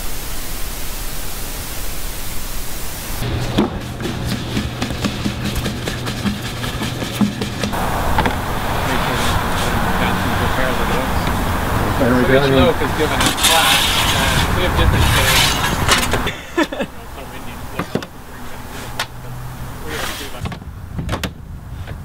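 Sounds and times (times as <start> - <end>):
steady hiss: 0.0 - 3.4
road traffic noise: 2.7 - 22.0
faint voices: 7.8 - 20.5.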